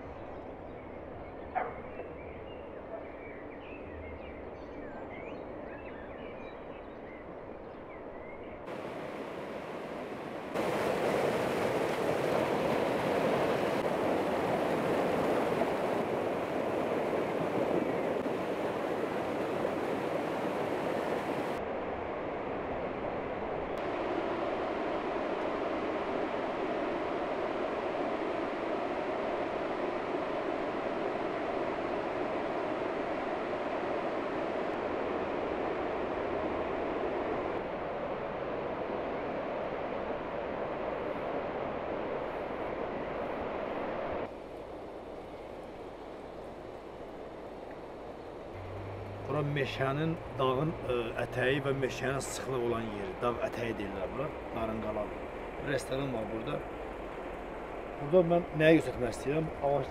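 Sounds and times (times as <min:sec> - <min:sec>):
wind: 0:00.0 - 0:59.9
river flowing over stones: 0:08.7 - 0:21.6.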